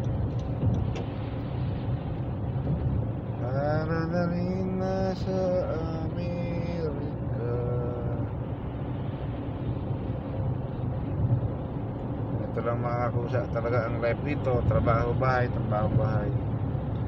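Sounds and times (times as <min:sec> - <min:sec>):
road and engine rumble in car: 0:00.0 - 0:17.0.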